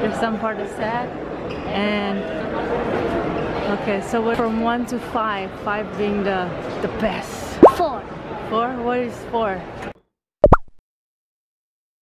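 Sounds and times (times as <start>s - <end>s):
cartoon double pop: 10.4s - 10.8s.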